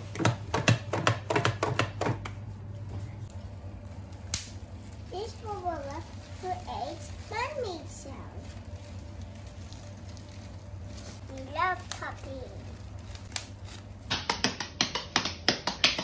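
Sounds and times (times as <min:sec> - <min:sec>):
low steady hum: 0:00.0 - 0:16.0
bubble wrap popping: 0:03.2 - 0:16.0.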